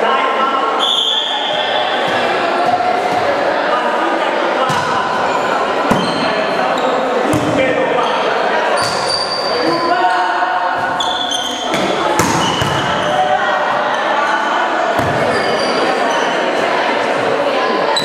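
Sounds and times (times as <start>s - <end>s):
chatter of young voices: 0.0s - 18.0s.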